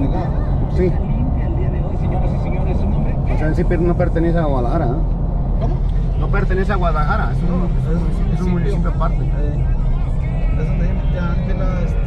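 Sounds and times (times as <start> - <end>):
road and engine rumble in car: 0.0 - 12.0.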